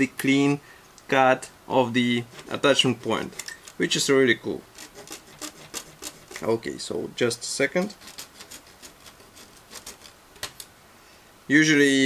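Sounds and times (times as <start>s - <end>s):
plastic parts clicking and tapping: 2.4s - 3.8s.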